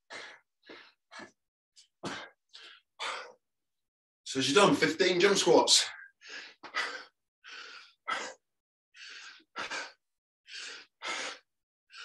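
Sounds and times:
person breathing hard: 0.0s - 1.4s, 2.0s - 3.5s, 5.9s - 12.0s.

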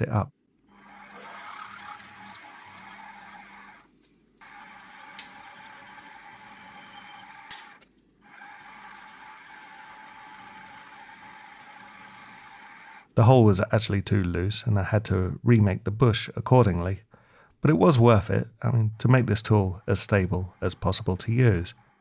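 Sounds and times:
milling machine drilling metal: 0.8s - 3.8s, 4.4s - 13.1s.

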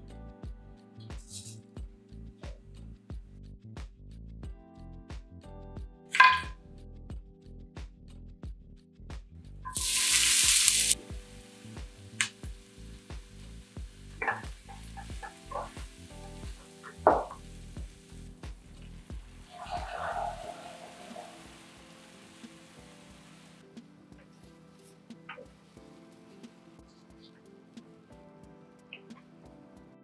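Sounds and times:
background music: 0.0s - 8.3s, 9.4s - 30.0s
spices sizzling in hot oil: 9.7s - 23.6s
wooden spoon scraping a pan: 14.1s - 21.9s.

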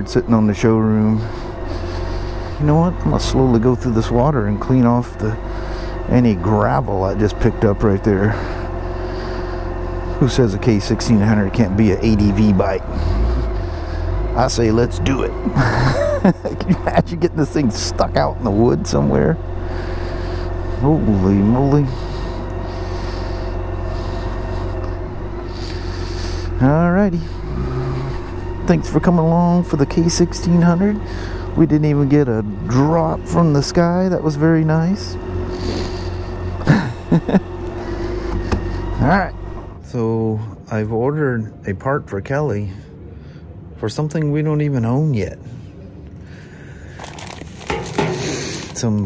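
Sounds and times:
motorcycle engine running at low revs: 0.0s - 39.8s
plastic bag crinkling: 47.0s - 48.8s.

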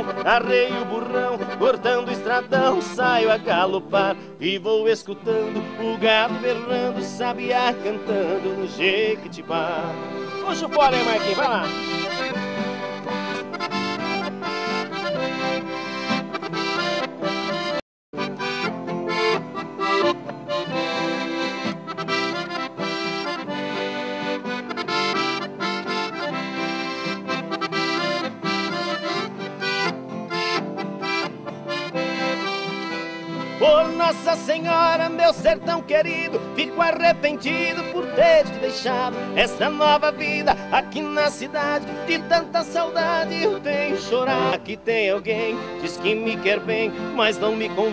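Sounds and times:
acoustic guitar accompaniment: 0.0s - 47.9s
piano accordion playing: 0.0s - 47.9s.

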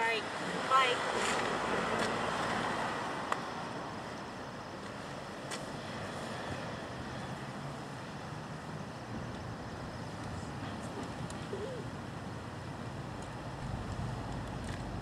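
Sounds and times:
low outdoor rumble: 8.9s - 15.0s.

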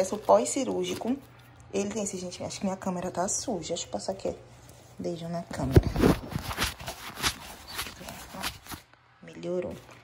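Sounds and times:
scrubbing against microphone: 5.6s - 8.8s.

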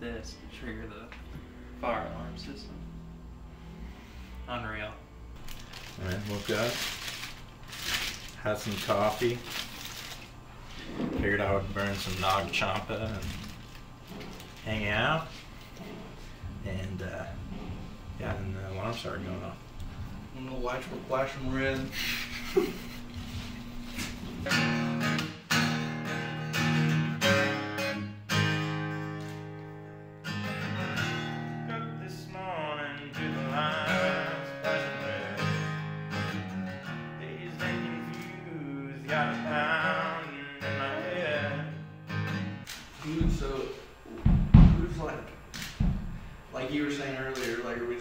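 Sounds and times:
acoustic guitar strumming: 0.0s - 9.4s, 20.1s - 43.6s
person singing: 31.7s - 35.8s, 37.1s - 41.8s
low thumps: 44.1s - 46.4s.

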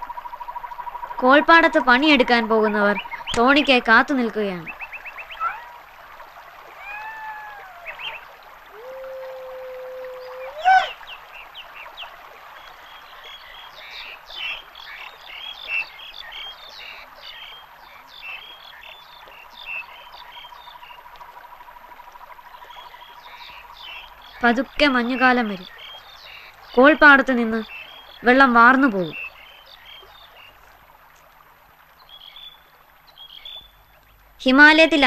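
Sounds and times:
frogs chirping croaks: 0.0s - 34.2s
frog held call: 5.3s - 5.8s, 6.8s - 11.0s.

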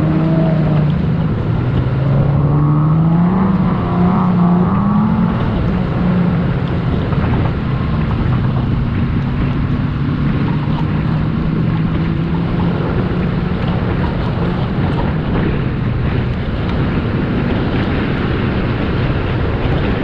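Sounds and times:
wind noise on microphone: 0.0s - 20.0s.

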